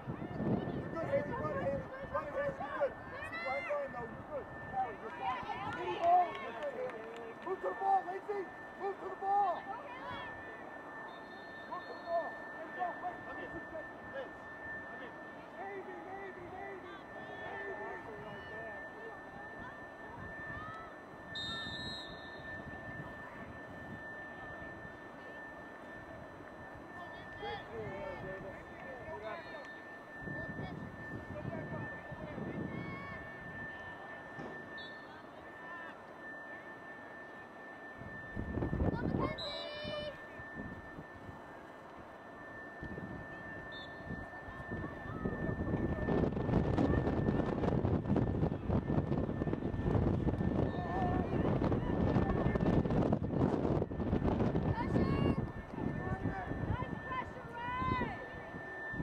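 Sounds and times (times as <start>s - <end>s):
high-pitched electronic tone: 7.5s - 59.0s
wind gusts on microphone: 44.1s - 57.2s.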